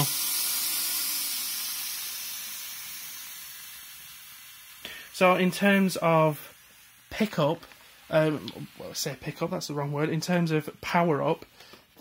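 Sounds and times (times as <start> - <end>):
steam mop hissing: 0.0 - 12.0.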